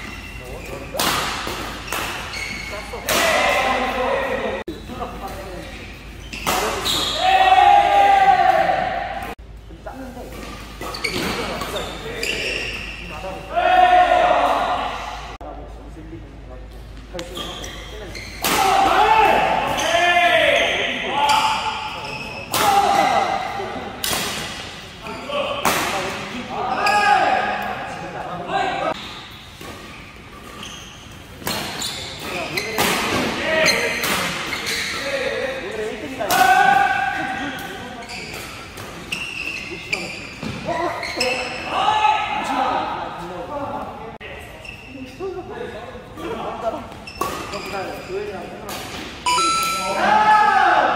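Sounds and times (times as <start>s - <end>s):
shoes squeaking on court: 0.0s - 3.1s, 4.7s - 7.2s, 10.3s - 13.5s, 16.9s - 18.4s, 29.0s - 32.8s, 33.6s - 35.2s, 37.4s - 41.7s, 44.6s - 45.2s, 46.9s - 48.3s
rackets hitting shuttlecock: 0.9s - 2.3s.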